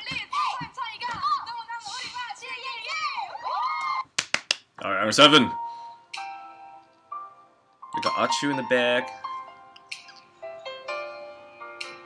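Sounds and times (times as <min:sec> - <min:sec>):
young women's voices: 0:00.0 - 0:04.0.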